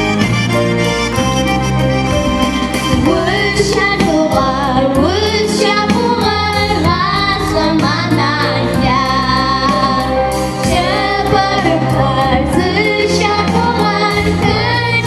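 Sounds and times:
instrumental accompaniment: 0.0s - 15.0s
children singing: 3.0s - 15.0s.

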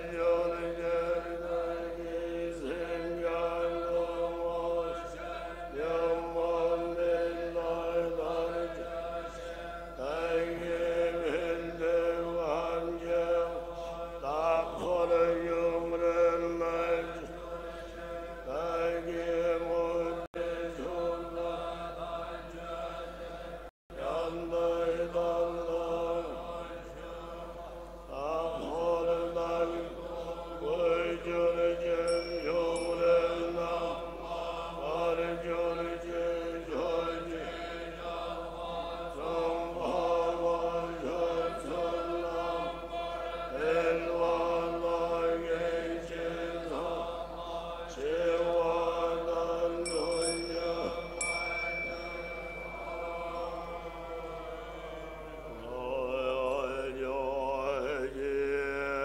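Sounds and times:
monks chanting in unison: 0.0s - 59.0s
high bell ring: 32.0s - 33.7s, 49.9s - 55.3s.

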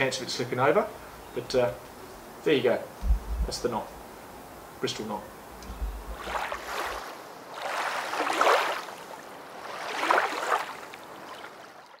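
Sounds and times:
surf waves washing: 5.6s - 12.0s.

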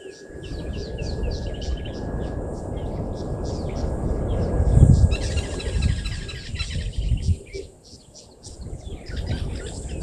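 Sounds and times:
wild birds chirping: 0.0s - 10.0s.

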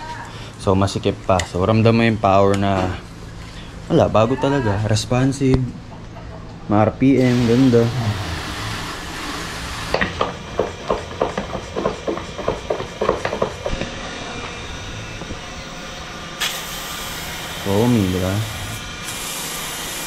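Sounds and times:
pressurised sprayer hissing: 7.1s - 20.0s
hose spraying water: 7.2s - 10.3s, 16.4s - 20.0s.

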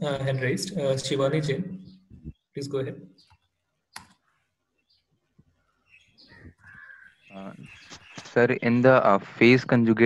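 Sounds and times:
sharp click: 4.0s - 4.2s
faint scattered sounds: 5.2s - 10.0s.

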